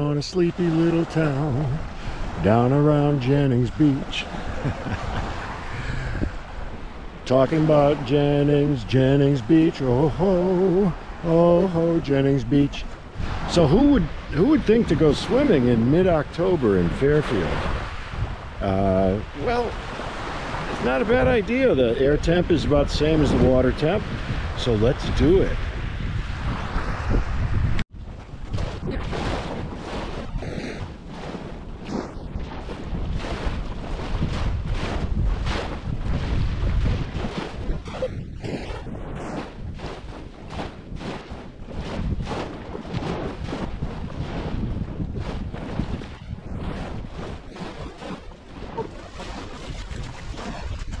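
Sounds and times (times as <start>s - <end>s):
small waves breaking on shore: 0.0s - 51.0s
wind buffeting microphone: 0.0s - 51.0s.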